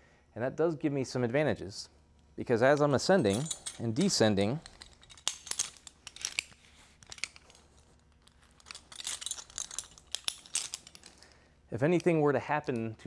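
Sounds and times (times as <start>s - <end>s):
metal hardware clicking and rattling: 2.7s - 11.3s.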